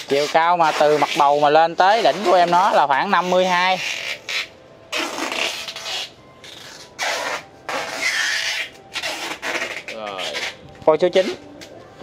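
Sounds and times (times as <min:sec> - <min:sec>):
tape measure scraping bark: 0:00.0 - 0:11.5.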